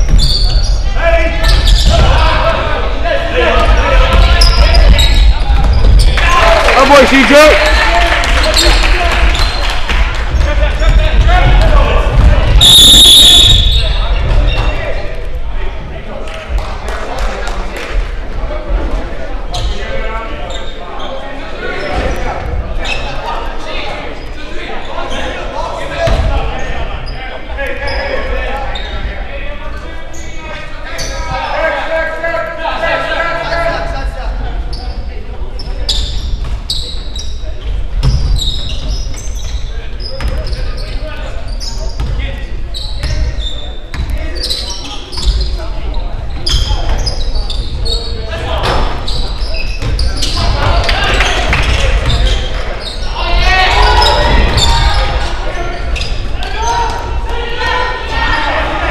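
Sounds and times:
echoing voices: 0.0 - 58.9
referee's whistle: 12.6 - 14.0.

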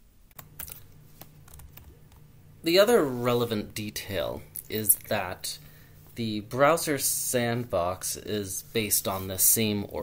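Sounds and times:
faint steady hum: 0.0 - 10.0
computer keyboard keystrokes: 0.3 - 2.2.

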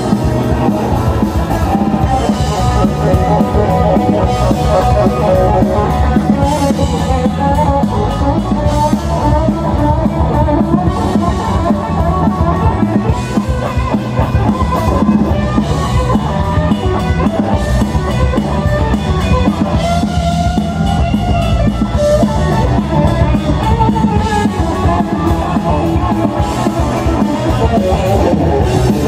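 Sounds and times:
drum kit: 0.0 - 29.0
electric bass: 0.0 - 29.0
electric guitar: 0.0 - 29.0.

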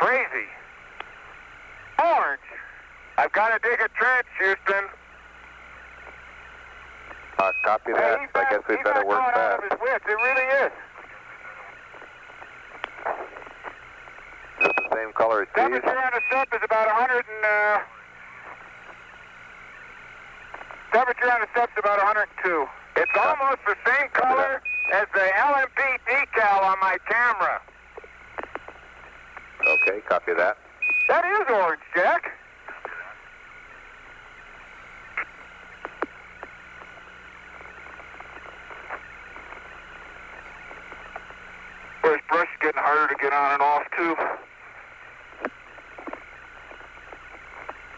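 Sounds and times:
radio hiss and hum: 0.0 - 47.9.

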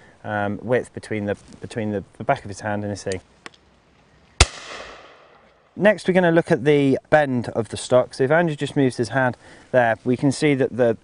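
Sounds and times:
shotgun shot with echo: 4.4 - 5.5.

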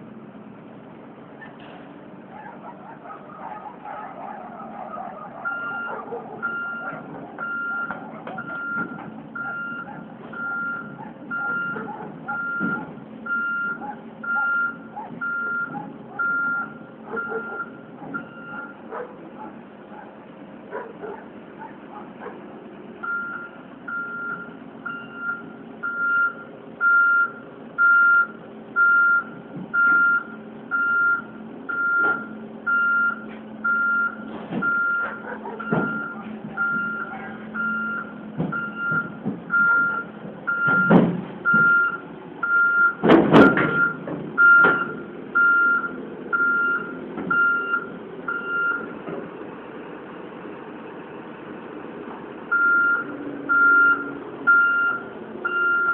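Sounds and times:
diesel engine running: 0.0 - 55.9
backup alarm beeping: 5.4 - 18.8, 23.0 - 48.9, 52.5 - 55.9.

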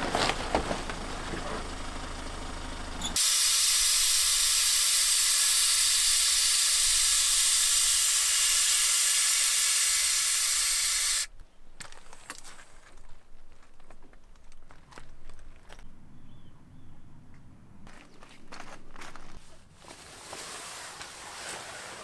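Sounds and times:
loud steady hiss: 3.2 - 11.3.

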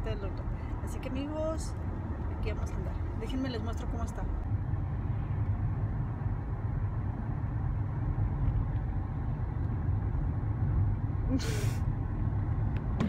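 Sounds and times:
car driving rumble inside cabin: 0.0 - 13.0.

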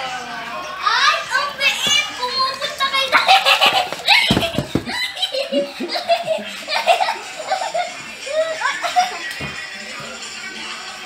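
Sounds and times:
high-pitched voices laughing: 3.0 - 9.4.

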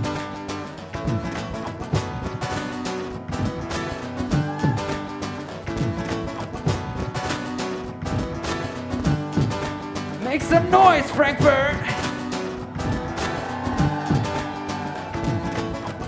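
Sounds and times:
acoustic guitar strumming: 0.0 - 16.0.

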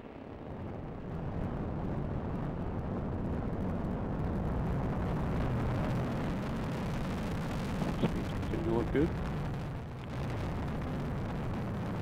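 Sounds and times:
rocket engine rumble: 0.2 - 12.0.

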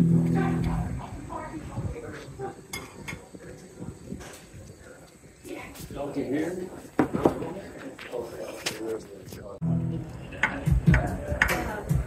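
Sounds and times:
live band chord: 0.0 - 0.9
voices talking: 0.0 - 12.0
cutlery clinking on a plate: 2.7 - 3.2.

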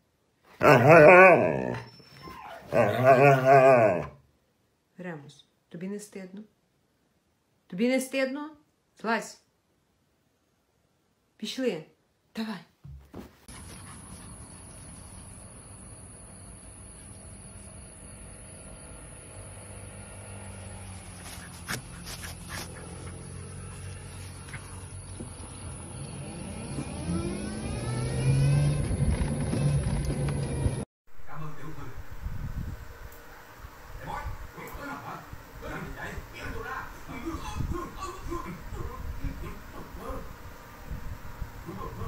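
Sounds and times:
dog howl-like grumbles: 0.6 - 4.2
crickets trilling: 14.3 - 21.0.

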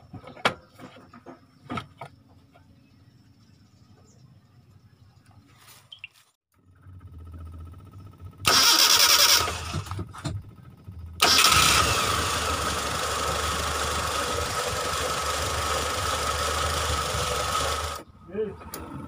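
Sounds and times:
car engine running: 6.5 - 19.0
car starter cranking: 8.4 - 14.0.

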